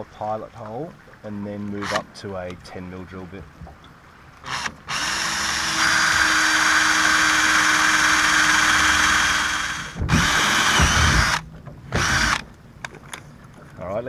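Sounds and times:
cordless drill boring into metal: 0:01.8 - 0:02.0, 0:04.5 - 0:11.4, 0:12.0 - 0:12.4.

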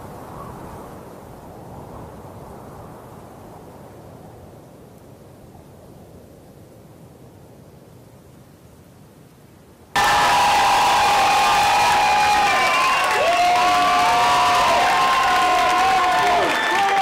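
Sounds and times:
audience cheering and applauding: 0:10.0 - 0:17.0.

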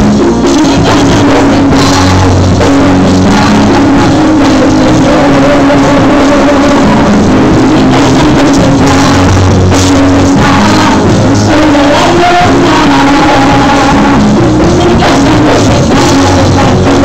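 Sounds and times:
drum kit: 0:00.0 - 0:17.0
electric bass: 0:00.0 - 0:17.0
live rock band playing: 0:00.0 - 0:17.0.

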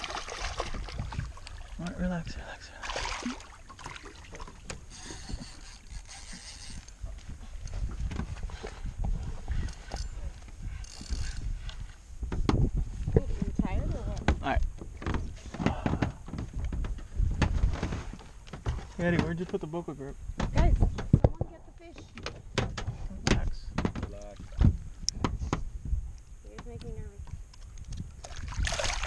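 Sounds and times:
fishing reel drag buzzing: 0:04.9 - 0:07.0, 0:09.4 - 0:11.7
wind buffeting microphone: 0:06.6 - 0:19.4, 0:20.2 - 0:21.7, 0:22.4 - 0:29.0
knocks on boat: 0:12.2 - 0:12.7, 0:18.5 - 0:19.7, 0:20.4 - 0:21.6, 0:22.2 - 0:25.7.

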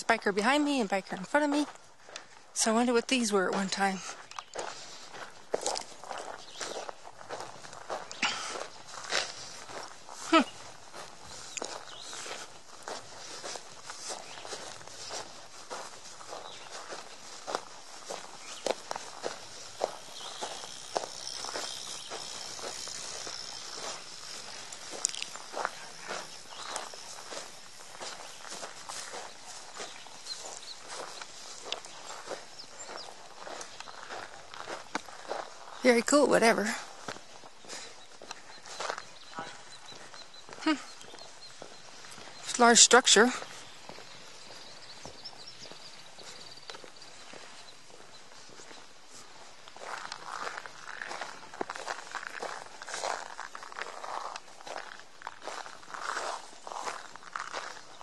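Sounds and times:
faint outdoor background: 0:00.0 - 0:58.0
footsteps on dirt trail: 0:00.0 - 0:58.0.

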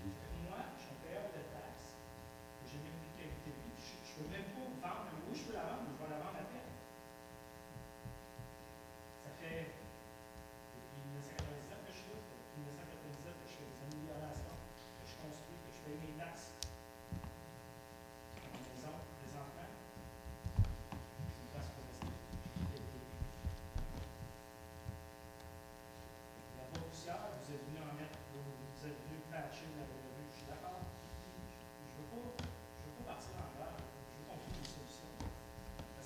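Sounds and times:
person speaking: 0:00.0 - 0:06.8, 0:10.7 - 0:17.4, 0:18.3 - 0:24.3, 0:26.4 - 0:36.0
electrical mains hum: 0:00.0 - 0:36.0
faint low thumps and knocks: 0:20.0 - 0:25.0.

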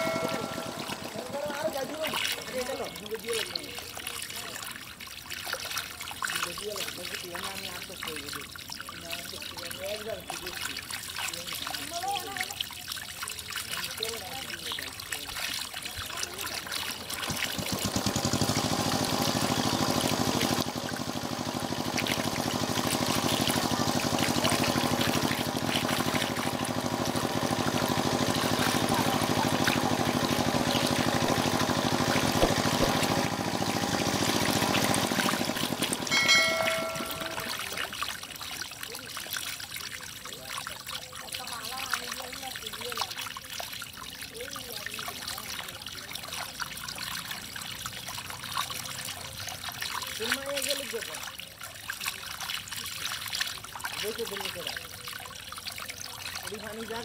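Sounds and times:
short chime: 0:00.0 - 0:01.2, 0:36.1 - 0:37.7
muddy water trickling: 0:00.0 - 0:57.0
small fish splashing: 0:00.0 - 0:57.0.

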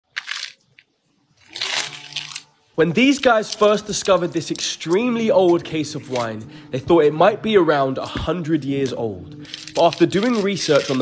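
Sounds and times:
metal blade scraping mud: 0:09.5 - 0:11.0.

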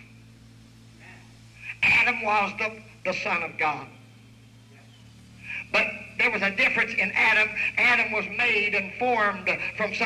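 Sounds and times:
steady low hum: 0:00.0 - 0:10.0
man preaching: 0:01.1 - 0:04.0, 0:05.5 - 0:10.0.

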